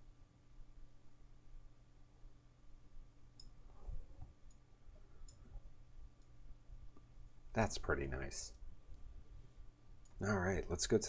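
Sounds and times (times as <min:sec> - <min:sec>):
low electrical hum: 0:00.0 - 0:11.0
computer mouse clicks: 0:03.3 - 0:03.6, 0:04.2 - 0:05.6.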